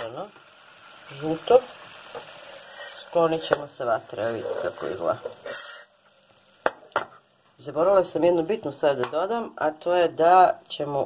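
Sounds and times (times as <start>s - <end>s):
syrup sizzling in pot: 0.0s - 11.0s.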